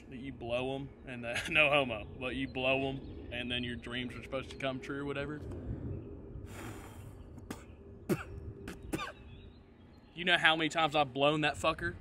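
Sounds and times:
man clearing throat: 7.5 - 9.2.

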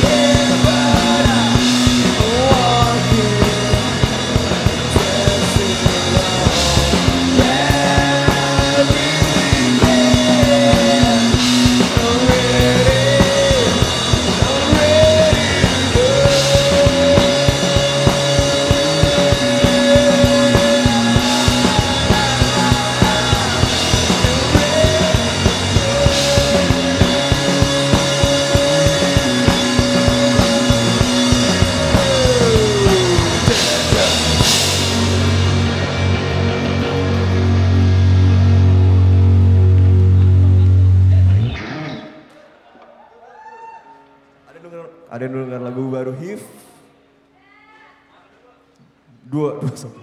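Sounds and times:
fast driving drum kit: 0.0 - 41.4
live rock band playing: 0.0 - 42.5.

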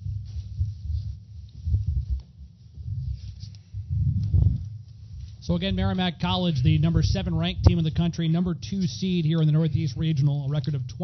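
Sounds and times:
microphones being handled and bumped: 0.0 - 11.0.

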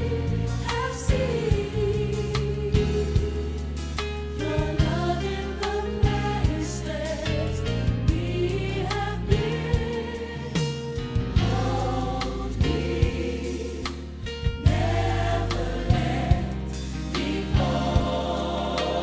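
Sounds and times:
choir singing gospel music: 0.0 - 19.0.

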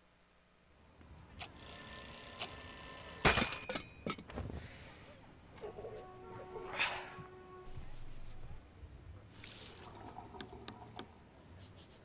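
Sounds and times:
alarm clock ringing: 1.6 - 3.7.

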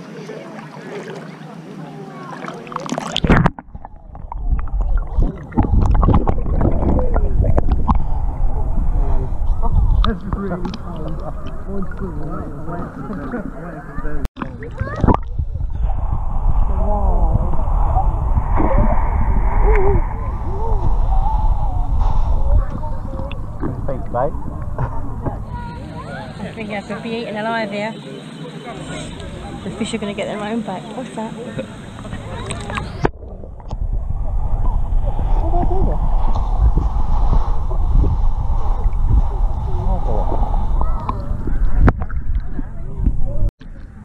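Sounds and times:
low rumble of water underwater: 0.0 - 44.0
muffled voices: 0.0 - 44.0
faint wavering tones: 15.6 - 44.0.

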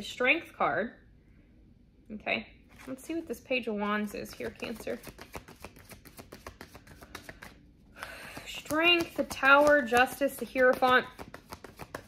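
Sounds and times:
cards being shuffled: 2.7 - 3.3, 4.0 - 12.0.

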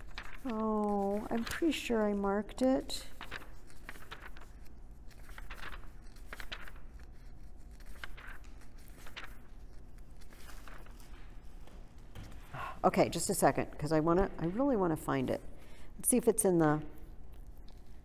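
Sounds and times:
paper rustling: 0.0 - 18.0.

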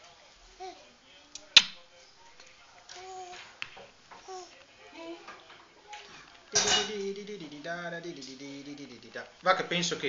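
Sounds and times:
tableware clinking: 6.5 - 7.0.

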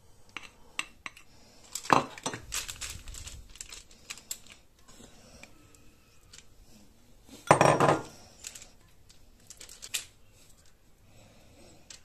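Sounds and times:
ceramic bowl clattering: 7.5 - 8.1.

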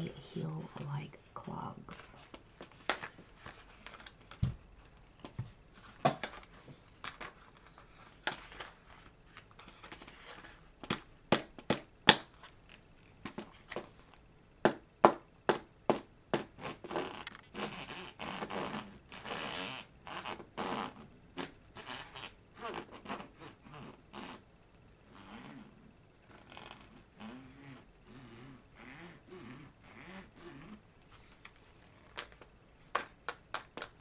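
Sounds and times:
shoes rubbing and creaking: 2.2 - 11.0, 15.9 - 24.4, 25.1 - 34.0.

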